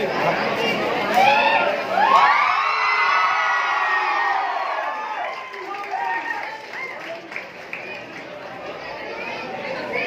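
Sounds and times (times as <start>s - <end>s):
crowd cheering and shouting: 1.0s - 7.0s.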